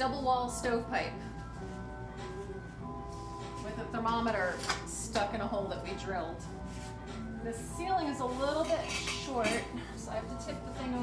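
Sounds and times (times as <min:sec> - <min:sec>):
metal stovepipe clattering: 0:08.6 - 0:09.8.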